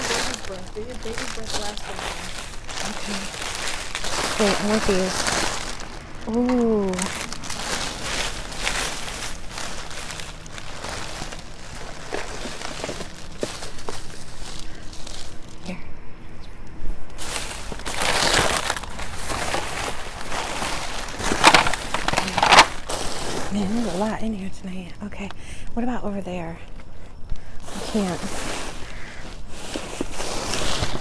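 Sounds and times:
plastic bags crinkling: 0.0 - 15.8, 17.2 - 24.5, 27.2 - 31.0.

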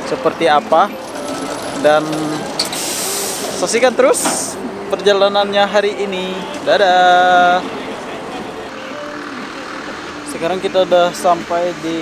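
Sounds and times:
traffic running: 0.0 - 12.0.

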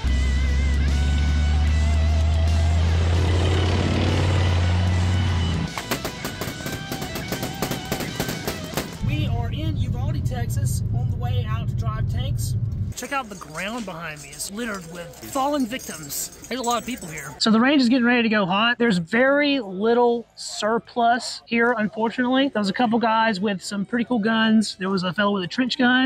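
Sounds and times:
loud deep rumble: 0.0 - 5.7, 9.0 - 13.0
music: 0.0 - 9.8
rifle shots: 5.7 - 9.0
voices: 9.0 - 26.0.

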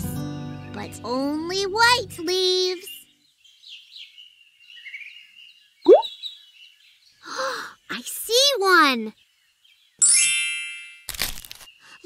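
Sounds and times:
faint birdsong: 0.0 - 10.1, 11.6 - 12.0.

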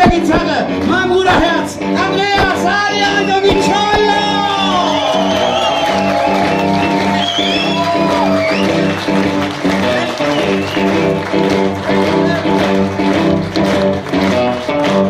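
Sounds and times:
blues band playing live: 0.0 - 15.0
electric guitar: 0.0 - 15.0.

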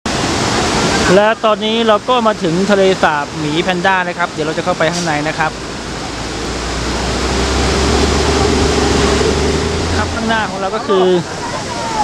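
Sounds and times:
rushing white water: 0.0 - 12.0
deep low water rumble: 0.1 - 12.0.

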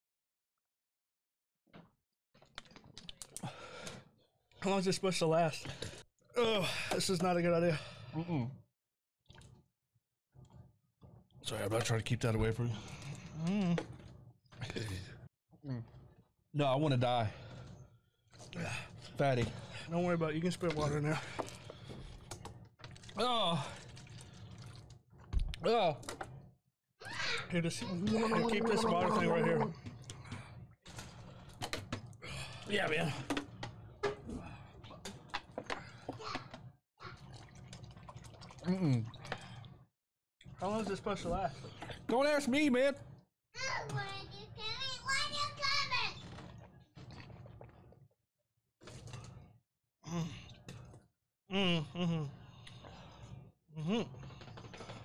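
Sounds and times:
man groaning: 28.0 - 29.7.

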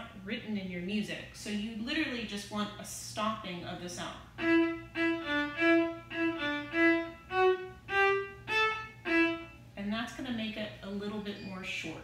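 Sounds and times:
viola staccato notes: 4.4 - 9.6.

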